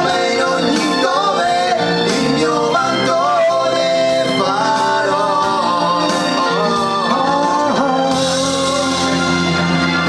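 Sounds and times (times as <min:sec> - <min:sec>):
two men singing: 0:00.0 - 0:09.7
instrumental accompaniment: 0:00.0 - 0:10.0.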